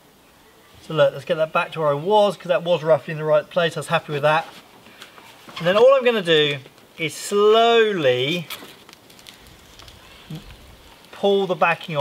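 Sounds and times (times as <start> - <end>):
backing paper peeling off vinyl: 3.9 - 12.0.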